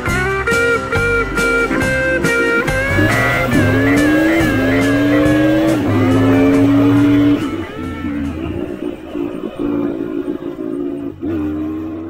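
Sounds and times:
dirt bike engine running: 0:00.4 - 0:12.0.

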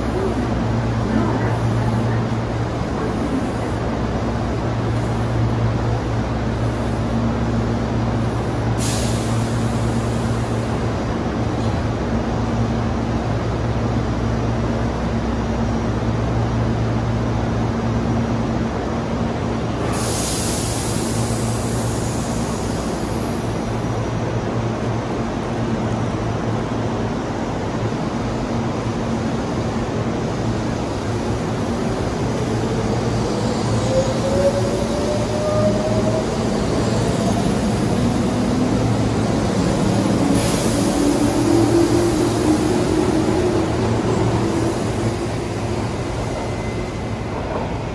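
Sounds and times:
train low hum: 0:00.0 - 0:47.9.

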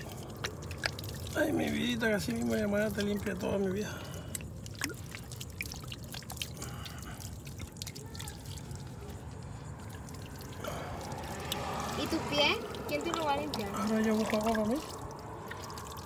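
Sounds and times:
water pouring from bottle: 0:00.0 - 0:16.0
water trickling onto sand: 0:00.0 - 0:16.0.

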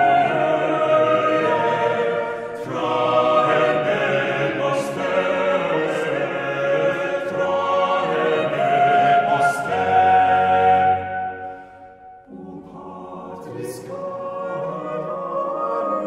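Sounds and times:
choir singing slow chords: 0:00.0 - 0:16.0.

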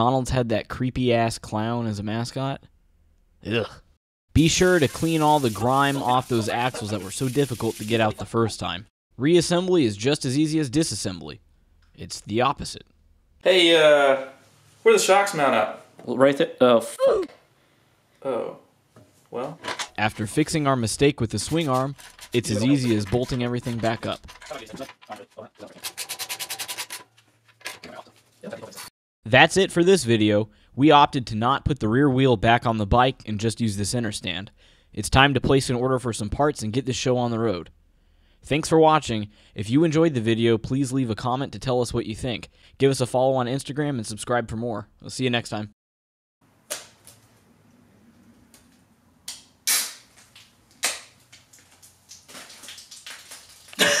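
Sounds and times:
spray can hiss: 0:04.6 - 0:08.1, 0:49.7 - 0:50.1
spray can clicks: 0:49.3 - 0:50.1.

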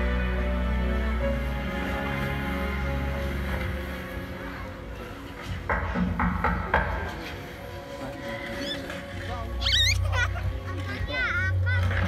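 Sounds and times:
film music over loudspeakers: 0:00.0 - 0:12.0
high squealing cries: 0:09.6 - 0:10.1.

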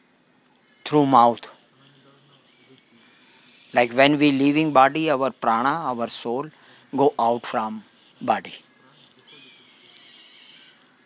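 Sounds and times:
faint high-pitched animal call: 0:08.8 - 0:11.0.

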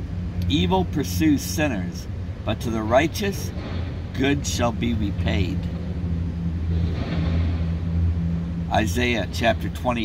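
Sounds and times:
vehicle engine idling: 0:00.0 - 0:10.0
faint rushing sound: 0:03.5 - 0:08.9.

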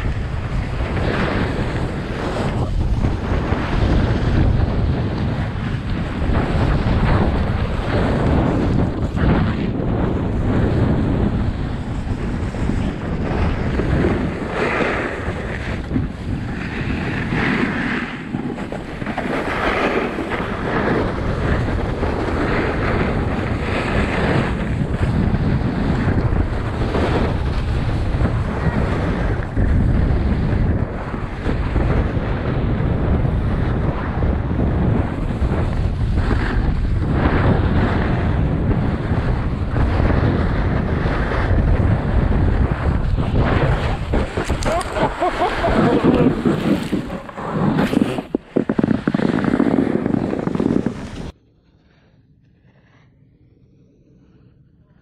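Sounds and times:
skis scraping over snow: 0:00.0 - 0:51.3
wind buffeting microphone: 0:00.0 - 0:52.0.

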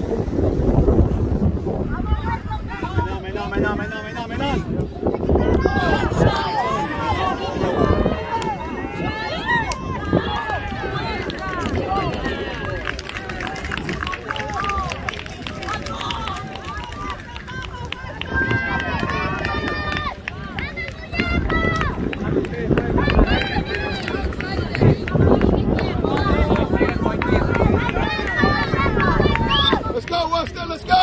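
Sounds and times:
wind rumble on microphone: 0:00.0 - 0:31.0.

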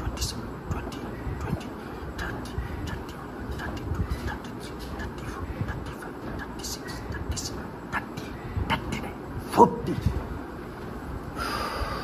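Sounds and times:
steady low background noise: 0:00.0 - 0:12.0
man breathing hard: 0:01.1 - 0:04.5, 0:11.3 - 0:12.0.

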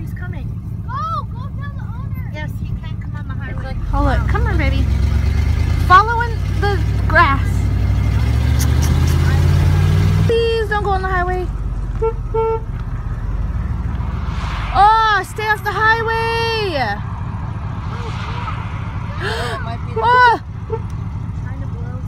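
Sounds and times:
car engine accelerating: 0:00.0 - 0:22.0
low steady rumble: 0:10.3 - 0:22.0.

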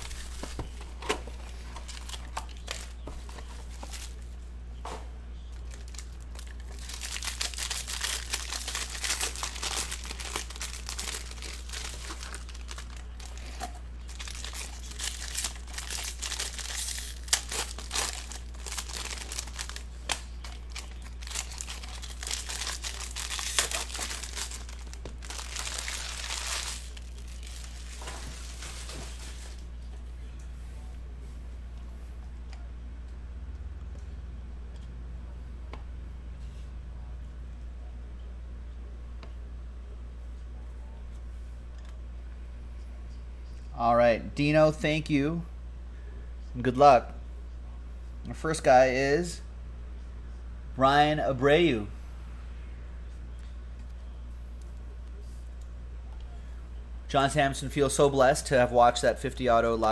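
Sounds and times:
steady low hum: 0:00.0 - 0:59.9
plastic wrappers crinkling and tearing: 0:01.3 - 0:04.3, 0:05.5 - 0:29.7.

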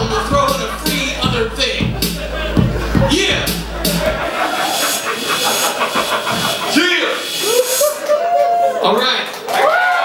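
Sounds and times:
backing track bass: 0:00.0 - 0:05.1
audience applauding: 0:04.0 - 0:10.0.

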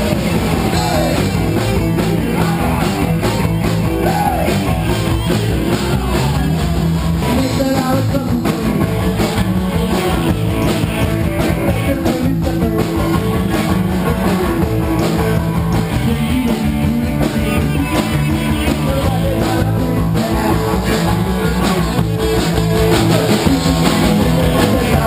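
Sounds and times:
live rock band playing: 0:00.0 - 0:25.0.

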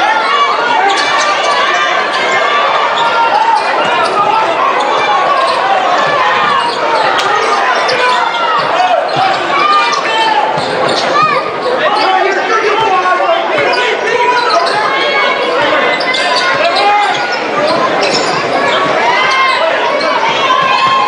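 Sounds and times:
arena crowd murmur: 0:00.0 - 0:21.0
sneakers squeaking: 0:00.1 - 0:21.0.

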